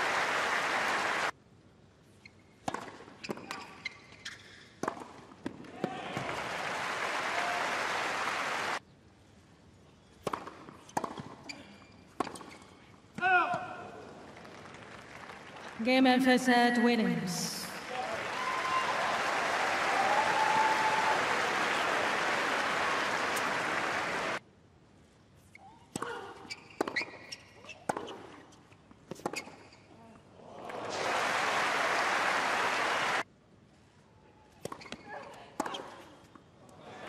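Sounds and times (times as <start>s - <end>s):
crowd applause: 0.0s - 1.3s, 6.0s - 8.8s, 14.3s - 15.8s, 17.8s - 24.4s, 30.5s - 33.2s
tennis ball struck by rackets: 4.8s - 5.6s, 10.2s - 11.4s.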